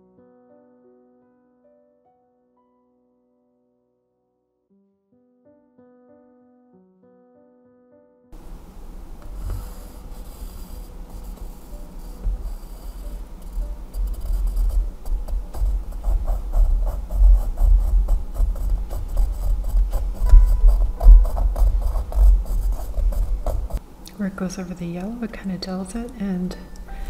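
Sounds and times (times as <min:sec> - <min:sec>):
sketch pad knocking on table: 0:09.4 - 0:23.8
pencil scribbling on paper: 0:09.5 - 0:23.8.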